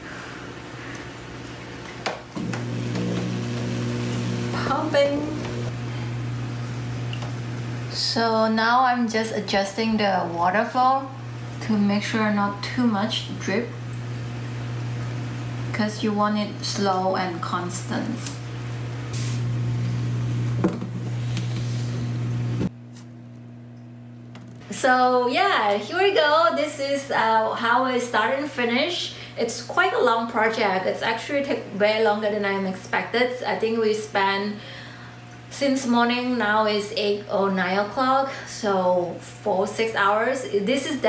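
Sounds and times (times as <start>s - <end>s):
aquarium pump humming: 0.0s - 29.0s.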